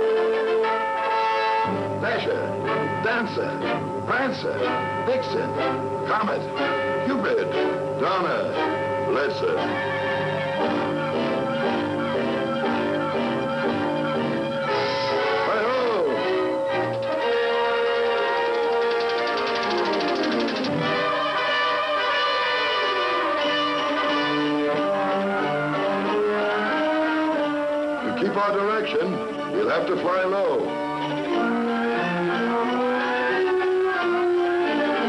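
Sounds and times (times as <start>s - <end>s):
orchestral cartoon music with brass: 0.0s - 35.0s.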